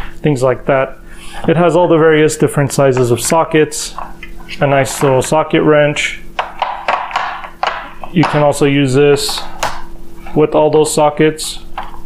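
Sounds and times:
wrench knocking on plastic case: 0:06.4 - 0:08.4.

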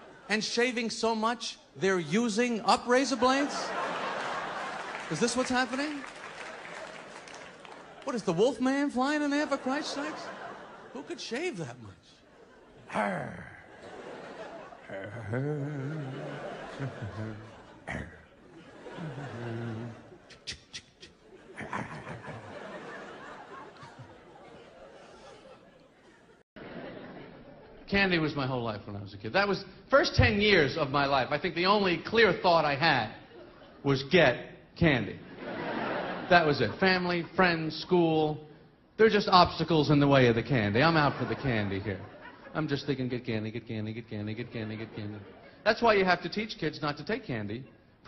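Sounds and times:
audience laughing: 0:02.7 - 0:28.3, 0:35.2 - 0:37.7, 0:40.6 - 0:43.2, 0:44.1 - 0:46.3
audience applauding: 0:04.1 - 0:08.6
man speaking into a microphone: 0:08.0 - 0:12.3, 0:27.8 - 0:35.3, 0:36.2 - 0:47.8.

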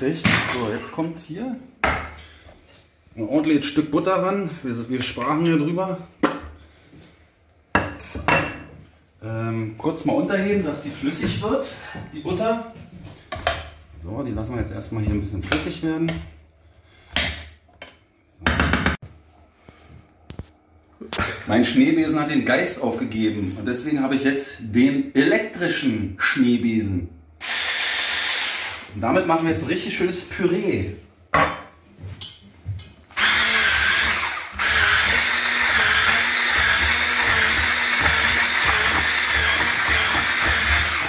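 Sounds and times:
kitchenware clattering: 0:07.7 - 0:08.9, 0:31.3 - 0:32.4
stick blender whirring: 0:27.4 - 0:28.9, 0:33.2 - 0:41.0.

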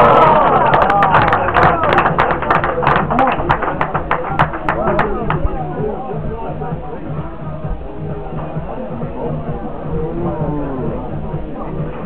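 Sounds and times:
rhythmic handclaps: 0:00.0 - 0:09.6
music with voices: 0:00.0 - 0:12.0.

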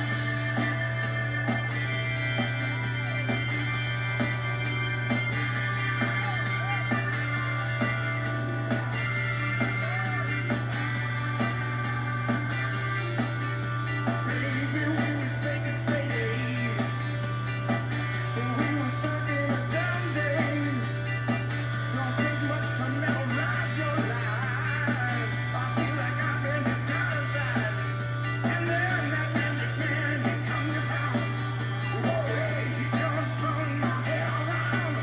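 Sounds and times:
live rock song from television: 0:00.0 - 0:35.0.

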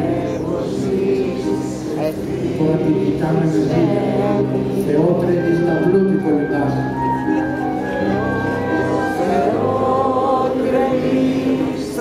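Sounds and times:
live band with keyboard and clarinet: 0:05.2 - 0:10.2.

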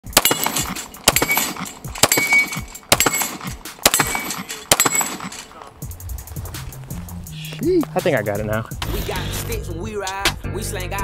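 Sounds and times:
metallic ring of steel target: 0:00.0 - 0:05.5
pistol shots: 0:00.0 - 0:05.5.

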